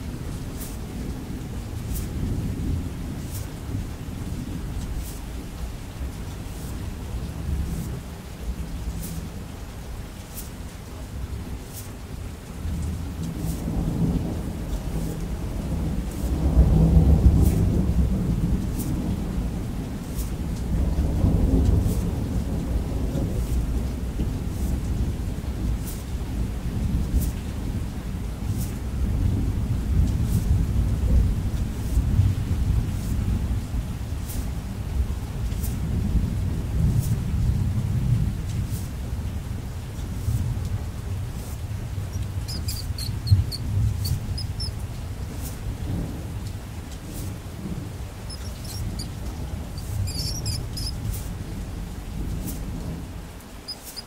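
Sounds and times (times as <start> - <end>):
thunder rumbling: 0.0 - 53.8
steady rain: 0.0 - 54.0.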